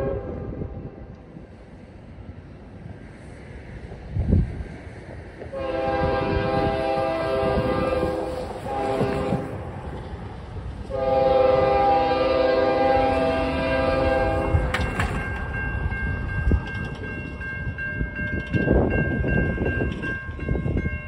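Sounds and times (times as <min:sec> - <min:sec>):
locomotive air horn blasts: 0:00.0 - 0:00.6, 0:05.5 - 0:09.6, 0:10.9 - 0:14.7
low rumble of train: 0:00.0 - 0:21.0
crossing signal bell ringing: 0:13.9 - 0:21.0.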